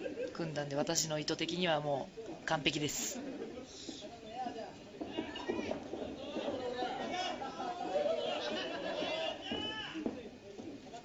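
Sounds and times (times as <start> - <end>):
voices chattering and calling out: 0.0 - 11.0.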